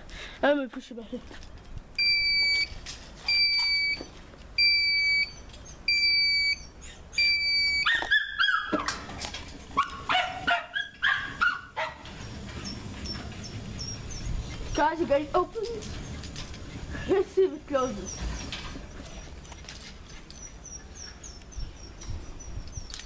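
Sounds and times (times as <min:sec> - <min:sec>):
electronic beeps: 0:04.6 - 0:07.8
dog barking and yelping: 0:07.8 - 0:09.0, 0:09.7 - 0:16.9, 0:17.8 - 0:23.0.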